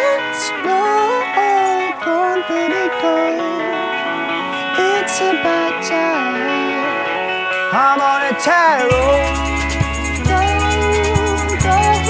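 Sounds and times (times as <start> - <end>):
electric guitars playing: 0.0 - 12.0
wordless lead vocal melody: 0.0 - 12.0.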